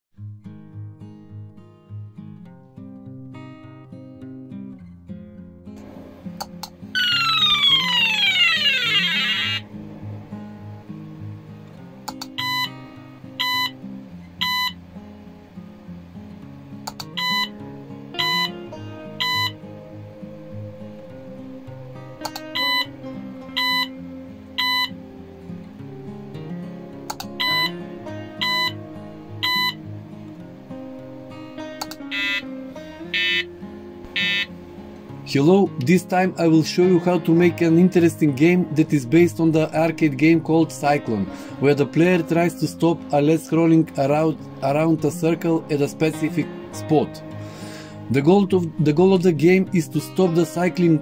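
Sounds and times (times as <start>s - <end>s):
guitar background music: 0.2s - 51.0s
buzzer tone sliding down: 7.0s - 9.7s, 19.2s - 19.6s, 23.5s - 23.9s, 24.6s - 25.0s, 27.4s - 27.8s, 28.4s - 28.8s, 29.4s - 29.8s, 32.1s - 32.5s, 33.1s - 33.5s, 34.2s - 34.6s
short electronic buzzer beeps: 12.4s - 12.8s, 13.4s - 13.8s, 14.4s - 14.8s, 17.2s - 17.5s, 18.2s - 18.6s, 19.2s - 19.6s, 23.6s - 23.9s, 24.6s - 25.0s, 27.4s - 27.8s, 28.4s - 28.8s, 29.4s - 29.8s, 32.1s - 32.5s, 33.1s - 33.5s, 34.2s - 34.5s
short clicks: 16.8s - 17.2s.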